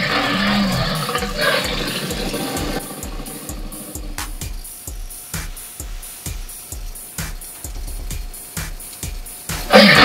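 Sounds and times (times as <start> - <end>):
dinosaur roar from speaker: 0.0 - 4.0, 9.7 - 10.0
music with steady drum beat: 0.0 - 10.0.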